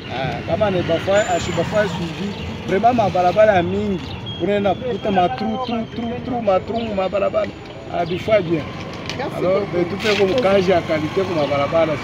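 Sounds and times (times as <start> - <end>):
man speaking: 0.0 - 8.7, 9.3 - 12.0.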